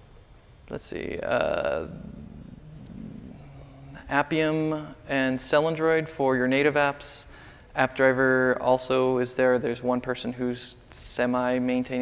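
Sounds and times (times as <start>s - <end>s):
faint low hummed voice: 0.7s - 5.3s
steady low rumble: 0.8s - 5.2s.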